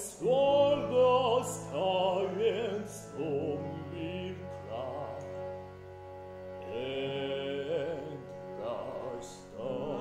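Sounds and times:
opera singing: 0.0s - 5.4s, 6.6s - 10.0s.

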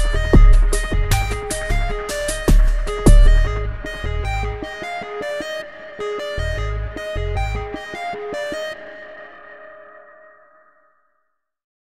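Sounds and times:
plucked notes: 0.0s - 9.8s
ringing chord: 0.0s - 10.1s.

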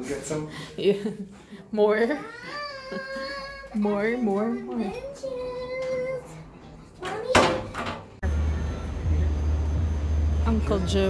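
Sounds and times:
city street traffic rumble: 8.2s - 11.0s.

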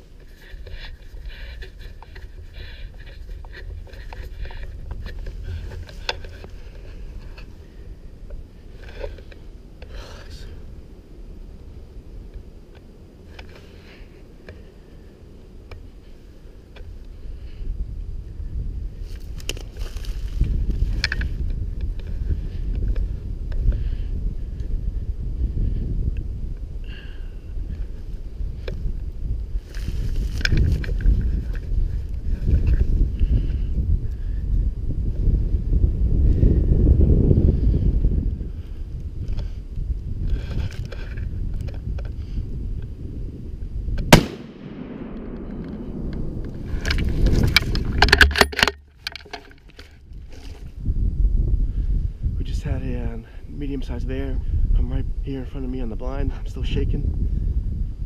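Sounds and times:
rustles and clicks: 0.0s - 10.4s, 19.0s - 23.1s, 27.7s - 33.3s, 44.0s - 50.8s
low rumbling: 42.4s - 49.1s
gunshot: 44.1s - 46.7s.

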